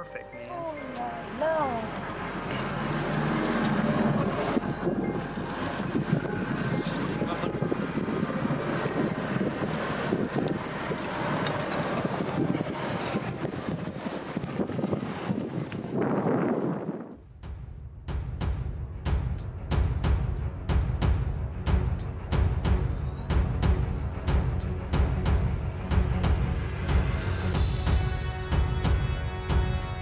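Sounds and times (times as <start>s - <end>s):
constant background rush: 0.0s - 16.4s
wind noise on microphone: 3.4s - 17.2s.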